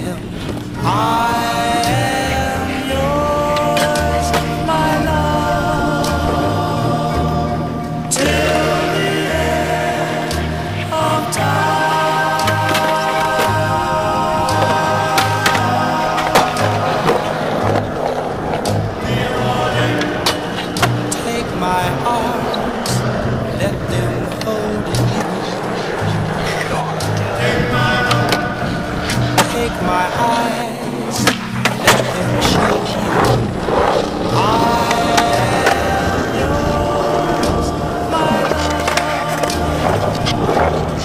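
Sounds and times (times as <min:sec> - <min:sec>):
skateboard wheels rolling: 0:00.0 - 0:41.0
song with steady bass line: 0:00.0 - 0:41.0.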